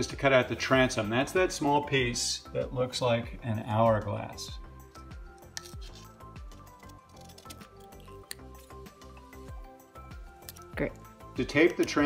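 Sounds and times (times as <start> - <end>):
background music: 0.0 - 12.0
scissors snipping paper: 4.9 - 9.0.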